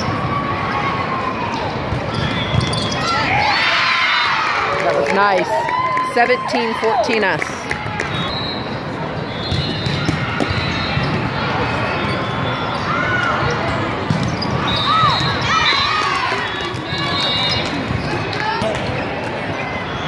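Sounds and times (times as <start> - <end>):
shoe squeaks: 2.1 - 3.2, 8.2 - 11.2.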